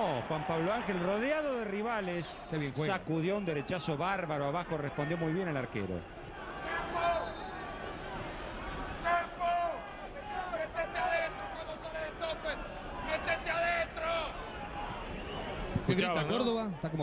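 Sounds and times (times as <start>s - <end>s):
stadium crowd noise: 0.0s - 17.0s.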